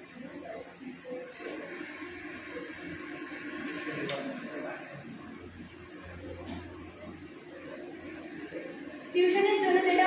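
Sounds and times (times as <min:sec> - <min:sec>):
faint indistinct speech: 0:00.0 - 0:10.0
room noise hiss: 0:00.0 - 0:10.0.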